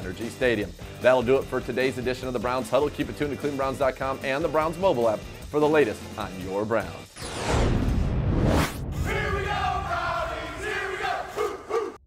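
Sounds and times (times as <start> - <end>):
crowd yelling: 9.0 - 12.0
short shouts: 9.1 - 12.0.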